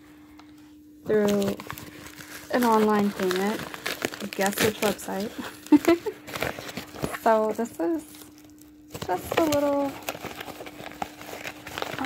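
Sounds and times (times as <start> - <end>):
paper envelope crinkling: 1.1 - 12.0.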